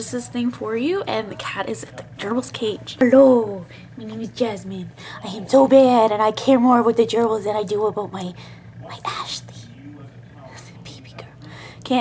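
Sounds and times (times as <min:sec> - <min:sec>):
woman speaking: 0:00.0 - 0:09.6, 0:10.9 - 0:12.0
woman whispering: 0:10.5 - 0:11.5.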